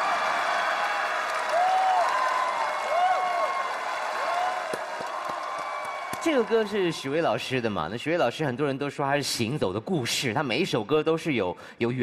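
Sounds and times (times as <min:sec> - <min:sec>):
audience applauding and cheering: 0:00.0 - 0:07.7.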